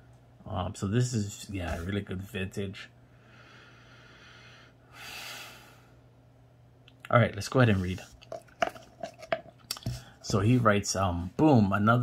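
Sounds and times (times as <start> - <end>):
person speaking: 0.4 - 2.8, 7.1 - 8.8, 9.7 - 12.0.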